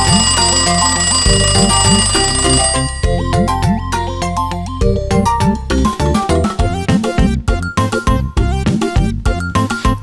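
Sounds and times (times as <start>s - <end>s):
alarm clock bells ringing: 0.0s - 4.4s.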